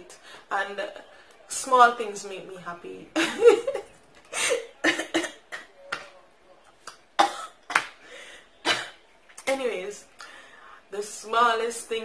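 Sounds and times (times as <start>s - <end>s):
woman laughing: 3.2s - 5.2s.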